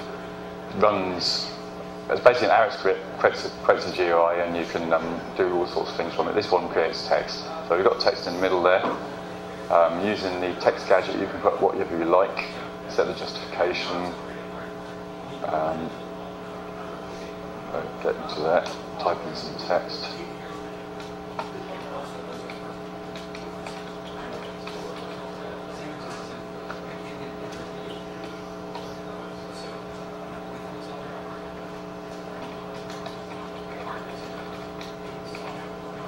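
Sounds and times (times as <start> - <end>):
steady hum of constant tones: 0.0 - 36.0.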